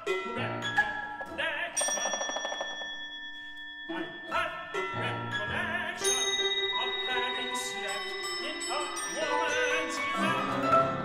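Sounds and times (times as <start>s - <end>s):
struck metallic percussion ringing: 1.2s - 10.1s.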